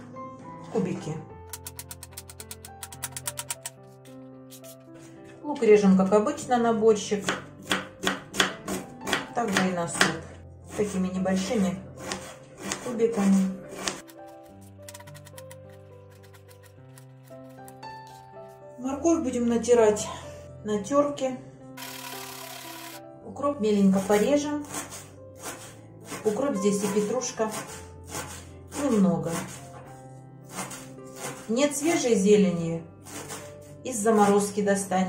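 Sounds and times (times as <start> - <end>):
background music: 0.0 - 35.0
knife chopping on plastic board: 7.2 - 11.0, 12.0 - 14.4, 24.0 - 29.7, 30.5 - 31.6, 33.1 - 33.5.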